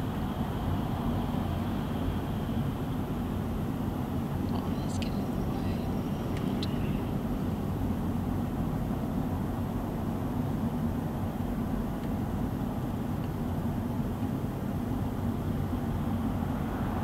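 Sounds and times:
car road and engine rumble: 0.0s - 17.0s.

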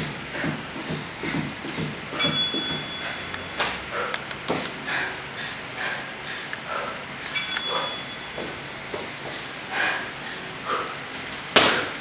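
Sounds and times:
timer bell ding: 2.2s - 3.6s, 7.4s - 8.6s.

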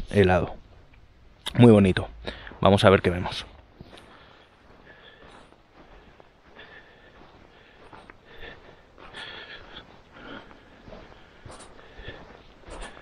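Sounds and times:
person breathing: 2.2s - 2.6s, 3.8s - 13.0s
footsteps on frosted grass: 2.2s - 13.0s.

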